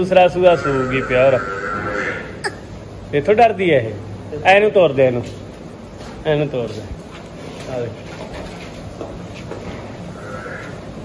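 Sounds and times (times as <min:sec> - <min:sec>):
buffalo shed background noise: 0:00.0 - 0:11.0
man calling out: 0:00.4 - 0:02.1
faint animal sounds: 0:00.4 - 0:02.5, 0:10.1 - 0:11.0.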